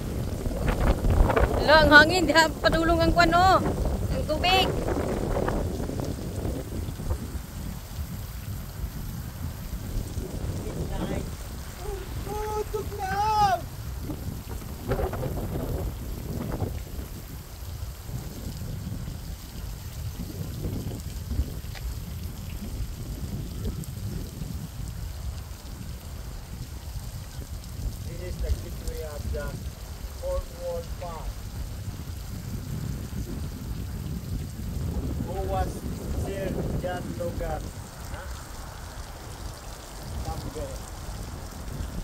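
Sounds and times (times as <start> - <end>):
fountain water splashing: 0.0 - 42.0
wind rumbling on microphone: 0.0 - 42.0.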